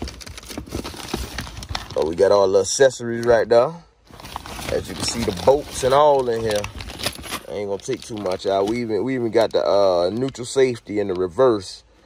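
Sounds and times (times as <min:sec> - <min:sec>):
cardboard box rustling: 0:00.0 - 0:02.2, 0:04.1 - 0:09.5
plastic packaging crinkling: 0:00.0 - 0:11.6.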